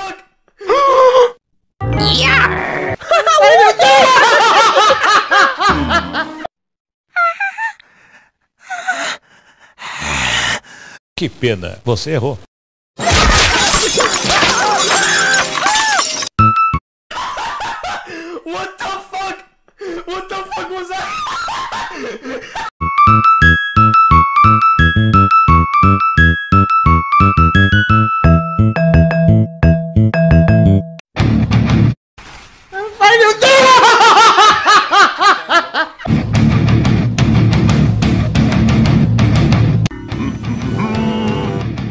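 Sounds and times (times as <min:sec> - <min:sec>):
high-pitched laugh: 0:02.9 - 0:06.5, 0:07.1 - 0:07.8, 0:33.4 - 0:36.0, 0:40.1 - 0:41.3
harsh shattering noise: 0:13.0 - 0:16.3.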